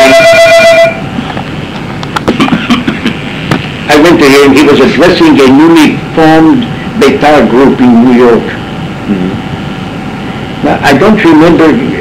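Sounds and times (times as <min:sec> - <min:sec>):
steady held tone: 0:00.0 - 0:12.0
man coughing: 0:02.2 - 0:03.2.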